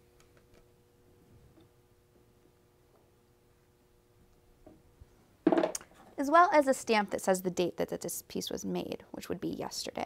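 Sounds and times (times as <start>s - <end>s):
woman speaking: 6.2s - 10.0s.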